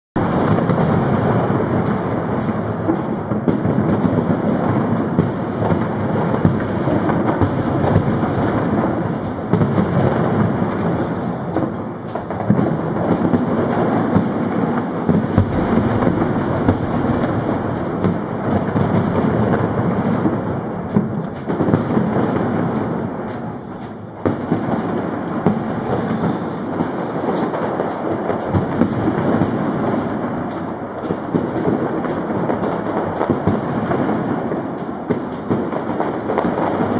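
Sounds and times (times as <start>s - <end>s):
fireworks booming and crackling: 0.2s - 36.9s.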